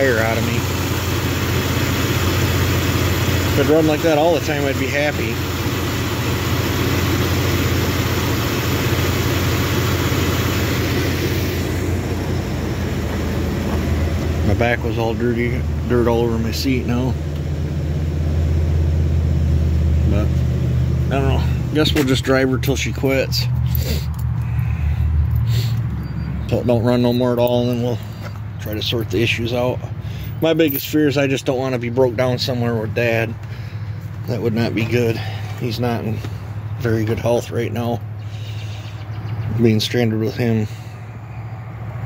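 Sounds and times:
truck engine idling: 0.0s - 42.0s.

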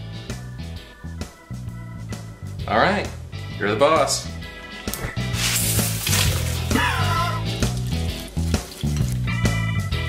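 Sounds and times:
background music with bass line: 0.0s - 10.0s
cheese powder poured into saucepan: 5.4s - 9.4s
stirring in saucepan: 5.4s - 9.5s.

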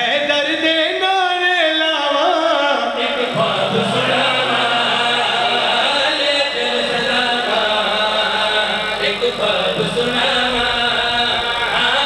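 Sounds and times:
men chanting through loudspeaker: 0.0s - 12.0s.

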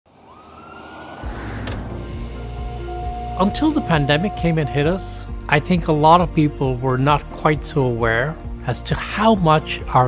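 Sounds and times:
ambulance siren: 0.1s - 5.3s
city traffic noise: 0.2s - 4.6s
deep pulsing music bass: 1.2s - 7.3s.

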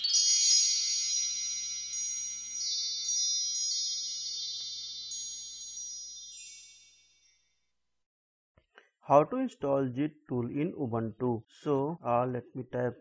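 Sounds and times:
shimmering bell-like chimes: 0.0s - 7.7s.

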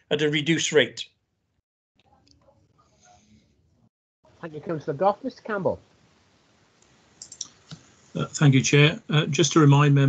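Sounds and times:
low hiss: 4.4s - 10.0s.

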